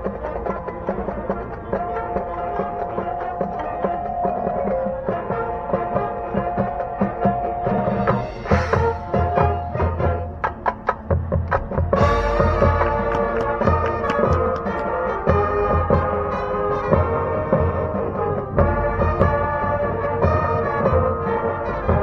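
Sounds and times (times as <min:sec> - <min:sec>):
marching band playing: 0:00.0 - 0:22.0.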